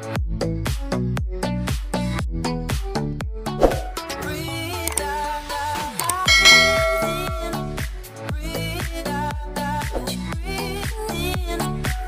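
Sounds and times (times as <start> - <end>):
bright bell ringing: 6.3 - 7.8.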